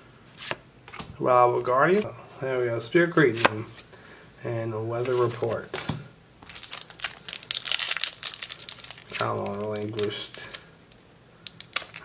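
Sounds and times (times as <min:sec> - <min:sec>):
foil wrapper crinkling: 0:06.4 - 0:12.0.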